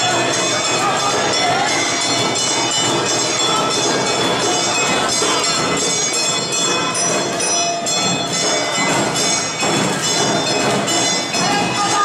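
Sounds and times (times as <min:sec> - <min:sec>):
festival band playing: 0:00.0 - 0:12.0
hand gong ringing: 0:00.0 - 0:12.0.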